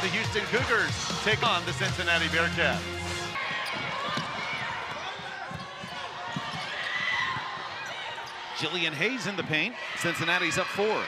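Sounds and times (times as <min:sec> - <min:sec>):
sneakers squeaking: 0:03.4 - 0:10.2.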